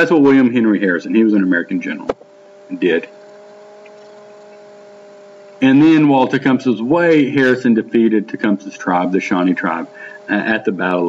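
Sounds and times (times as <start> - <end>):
faint hum of level tones: 0.0 - 11.0.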